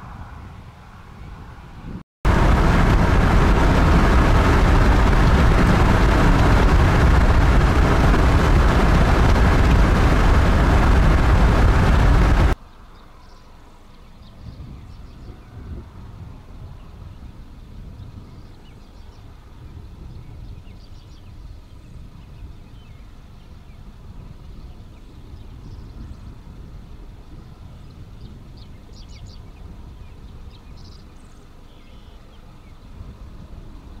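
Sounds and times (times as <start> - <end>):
wind buffeting microphone: 0.0 - 12.6, 14.2 - 31.6, 32.5 - 34.0
faint outdoor ambience: 0.0 - 34.0.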